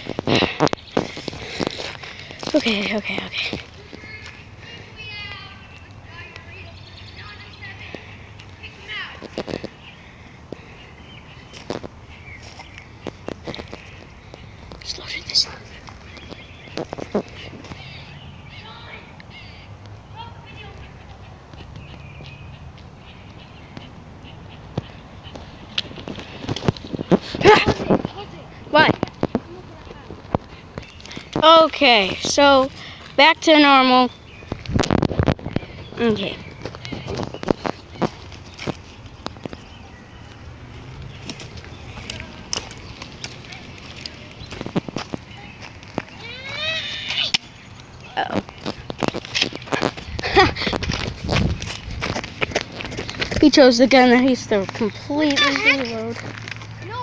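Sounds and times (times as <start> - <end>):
footsteps on dry grass and leaves: 11.3 - 17.9, 34.3 - 56.8.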